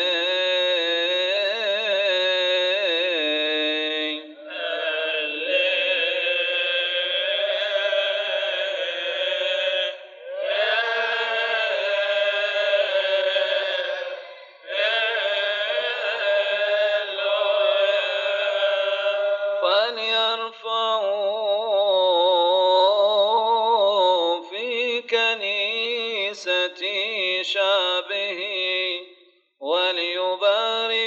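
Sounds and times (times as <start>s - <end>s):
male voices chanting: 0.0s - 20.5s.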